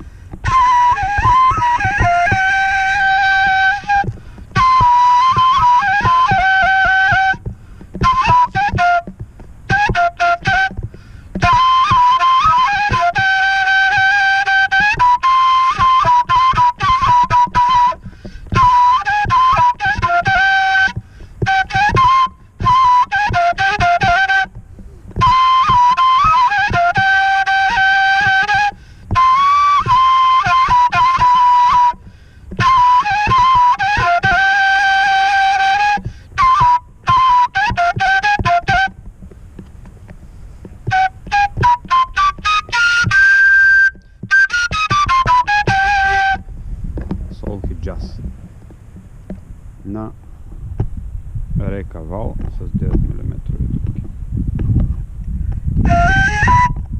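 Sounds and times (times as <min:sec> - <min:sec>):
flute melody: 0:00.0 - 0:39.4, 0:40.8 - 0:46.5, 0:55.8 - 0:56.9.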